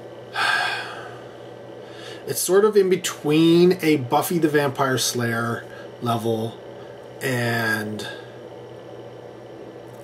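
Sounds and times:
faint room hum: 0.0 - 10.0
man breathing in: 0.3 - 2.3.

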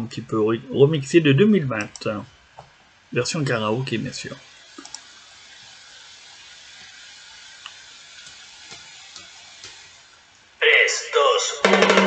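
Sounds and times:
recording hiss: 0.0 - 12.0
faint clicks: 4.7 - 5.1.

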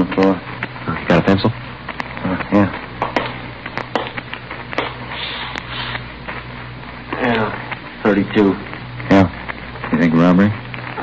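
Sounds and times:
record surface crackle: 0.0 - 11.0
steady low hum: 0.0 - 11.0.

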